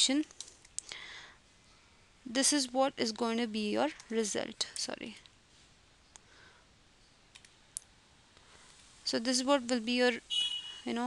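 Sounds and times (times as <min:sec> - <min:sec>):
low hiss: 0:00.0 - 0:11.0
keyboard and mouse clicks: 0:07.3 - 0:07.9.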